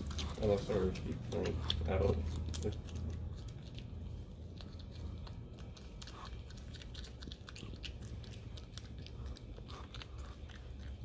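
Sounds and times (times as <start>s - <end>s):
porcupine chewing crisp crunches: 0.0s - 11.0s.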